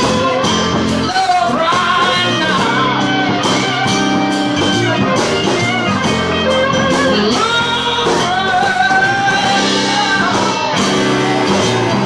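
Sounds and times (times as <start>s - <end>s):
drums: 0.0s - 12.0s
second guitar: 0.0s - 12.0s
strummed acoustic guitar: 0.0s - 12.0s.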